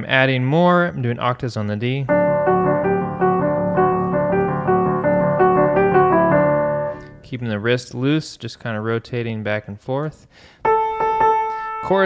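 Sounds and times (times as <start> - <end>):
solo piano riff: 2.1 - 7.2, 10.7 - 11.9.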